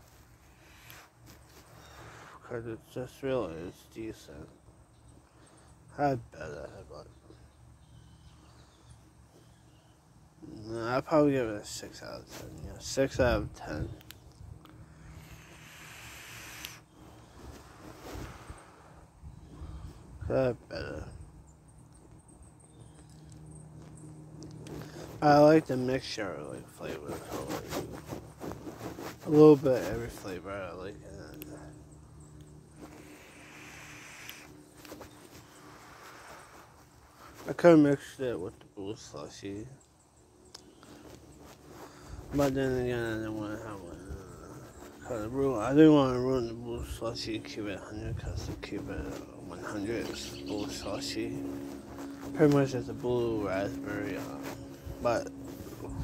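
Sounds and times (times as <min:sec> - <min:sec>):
faint outdoor hiss: 0:00.0 - 0:56.0
airy hiss of vape inhale: 0:15.1 - 0:19.1, 0:32.9 - 0:34.5.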